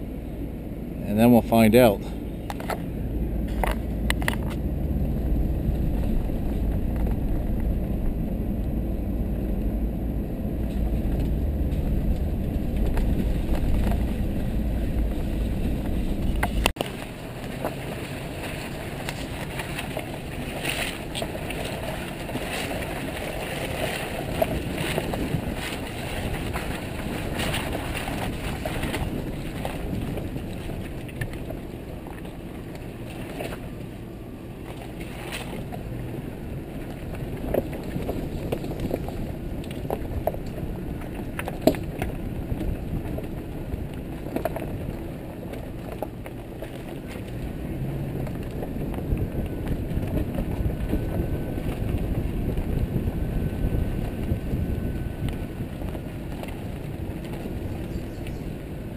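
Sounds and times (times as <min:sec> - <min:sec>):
deep engine rumble: 0:00.0 - 0:58.9
tyres on dirt trail: 0:00.0 - 0:58.9
wind: 0:00.0 - 0:58.9
water splashes: 0:10.6 - 0:48.6.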